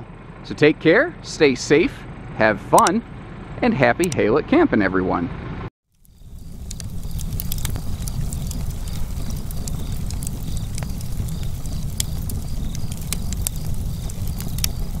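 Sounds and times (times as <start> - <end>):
fire popping: 5.9 - 15.0
wood fire crackling: 5.9 - 15.0.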